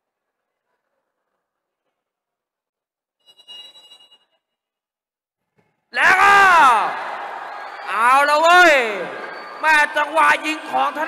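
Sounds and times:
referee's whistle blast: 6.0s - 11.0s.

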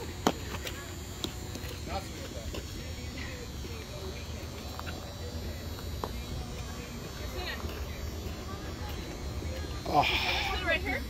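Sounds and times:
distant indistinct voices: 0.0s - 11.0s.

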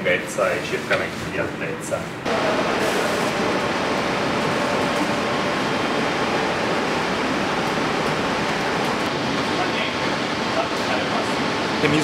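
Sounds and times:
ventilation hiss: 0.0s - 12.0s.

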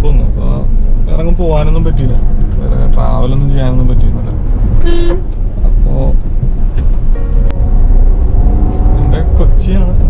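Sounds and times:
car cabin road and engine rumble: 0.0s - 10.0s.

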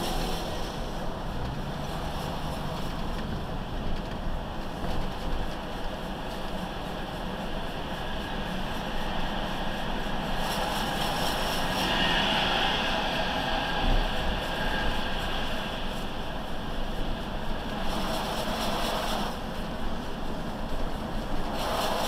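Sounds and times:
road noise inside a car: 0.0s - 22.0s.

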